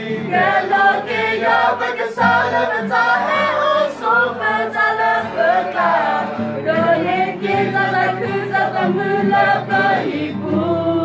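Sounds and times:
group singing a hymn: 0.0 - 11.0.

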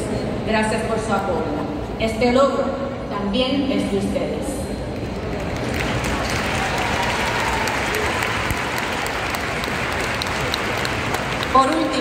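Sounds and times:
audience applauding: 5.2 - 12.0.

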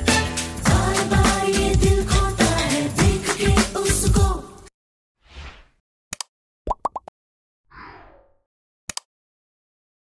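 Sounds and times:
mouse double click: 8.9 - 9.1.

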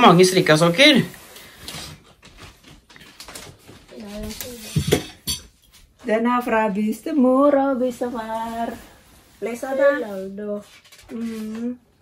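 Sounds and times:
plates and cutlery clinking on tray: 4.2 - 5.8
person speaking: 6.9 - 11.8.

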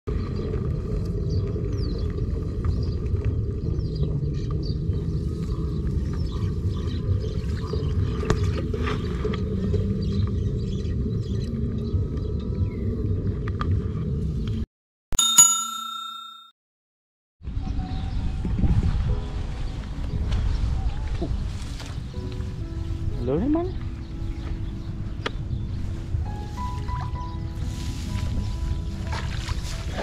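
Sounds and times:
low rumble: 0.1 - 14.6
bell-like ding: 15.2 - 16.6.

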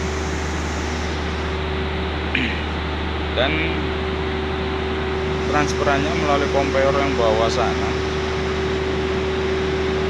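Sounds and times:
mill machinery running: 0.0 - 10.0.

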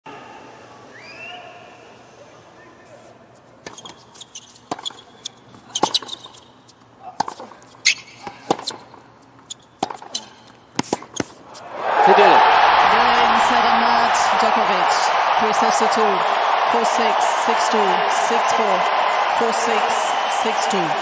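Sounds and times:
tennis ball struck by rackets: 7.1 - 9.0, 9.8 - 10.2, 10.8 - 11.6
crowd cheering: 11.6 - 21.0.

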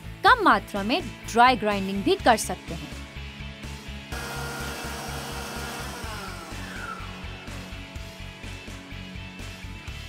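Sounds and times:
music with steady beat: 2.8 - 10.0
food processor motor whining: 4.1 - 7.8.

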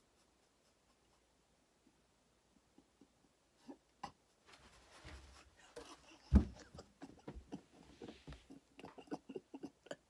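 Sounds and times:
person rustling on a bench: 4.4 - 6.6, 7.3 - 8.5.

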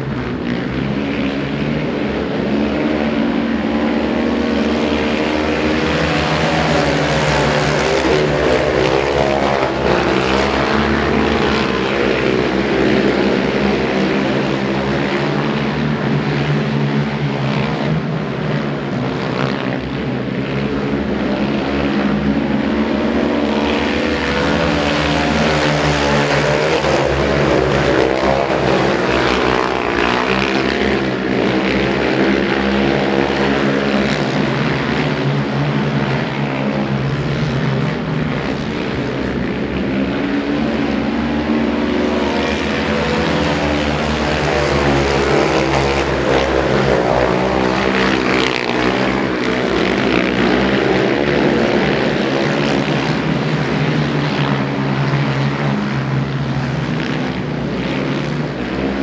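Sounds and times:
quad engines racing: 0.0 - 59.0.

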